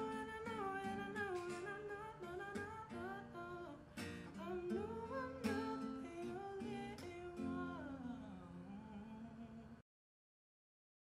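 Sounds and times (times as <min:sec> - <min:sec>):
plucked acoustic guitar: 0:00.0 - 0:08.8.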